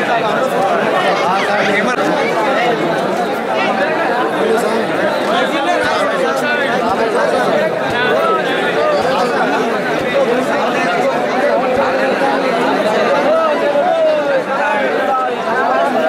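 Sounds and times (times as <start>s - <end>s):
crowd babble: 0.0s - 16.0s.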